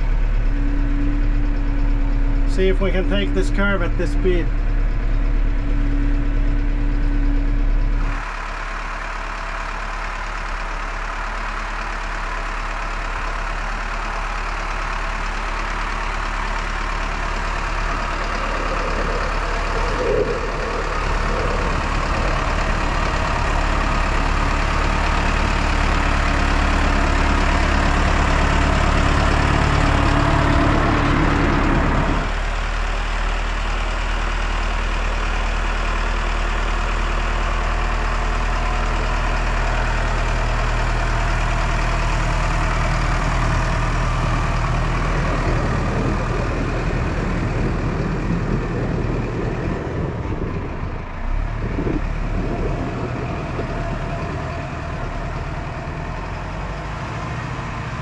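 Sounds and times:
tractor diesel engine under load: 0.0s - 58.0s.

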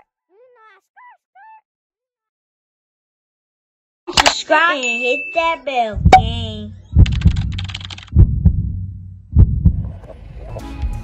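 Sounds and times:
heartbeat thumps: 5.9s - 10.2s.

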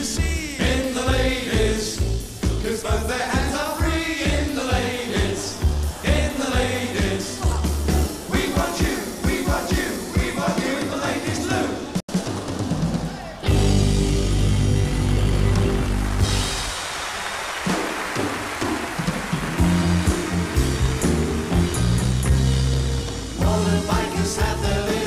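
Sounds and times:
bass guitar: 0.0s - 8.3s, 13.4s - 16.7s, 19.6s - 25.0s
drums: 0.0s - 25.0s
electric guitars: 13.4s - 16.9s, 19.0s - 25.0s.

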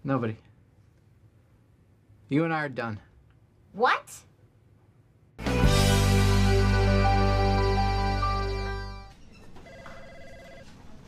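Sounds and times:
music: 5.4s - 9.1s
electronic telephone ringing: 9.6s - 10.8s.

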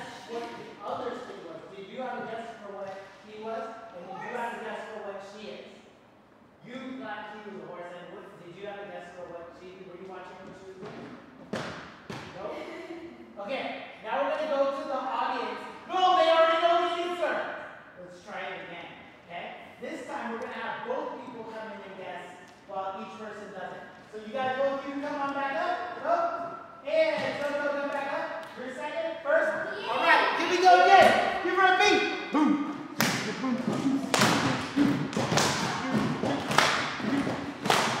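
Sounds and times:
voices talking: 21.4s - 38.0s
sharp thuds and claps: 33.0s - 38.0s.

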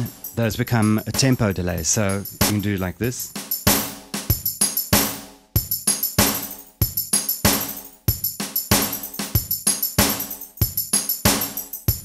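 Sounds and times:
drum machine loop: 0.0s - 12.0s.

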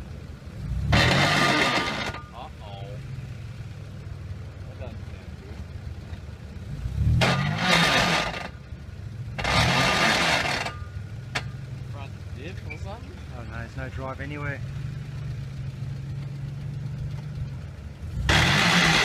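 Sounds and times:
car engine revving: 0.0s - 19.0s
tyres scrabbling in loose dirt: 1.0s - 2.4s, 7.1s - 8.6s, 9.4s - 11.6s.

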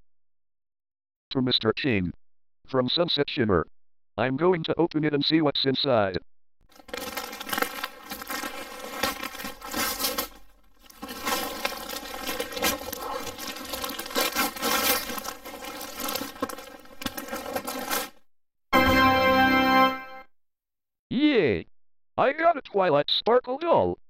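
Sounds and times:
wrapping paper tearing and crinkling: 6.7s - 18.2s
background music: 18.8s - 20.3s.

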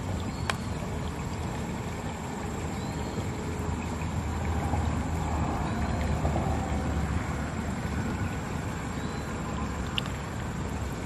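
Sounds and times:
outdoor rumble and hiss: 0.0s - 11.0s.

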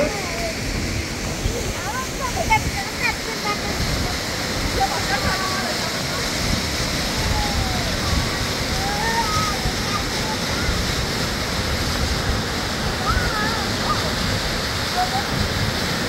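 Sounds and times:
faint voices: 0.0s - 16.0s
waterfall rushing into pool: 0.0s - 16.0s.

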